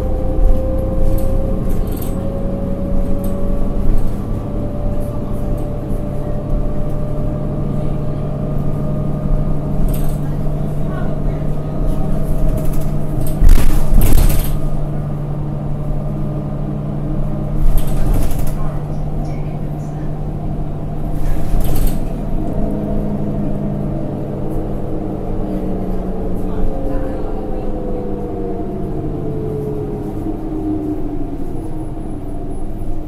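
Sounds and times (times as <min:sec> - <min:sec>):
bus engine humming: 0:00.0 - 0:33.0.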